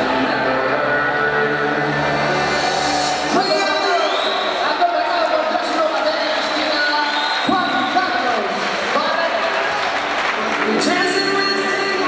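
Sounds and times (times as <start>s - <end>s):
voices echoing in a hall: 0.0s - 12.0s.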